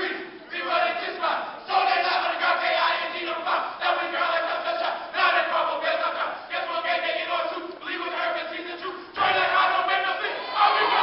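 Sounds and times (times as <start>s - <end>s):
crowd in a hall: 0.0s - 11.0s
men shouting a chant: 0.0s - 11.0s.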